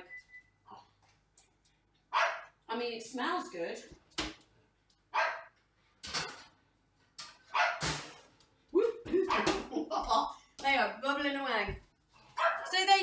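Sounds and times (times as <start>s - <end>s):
dog barking: 2.1s - 2.5s, 5.1s - 5.6s, 7.5s - 7.8s, 12.4s - 12.7s.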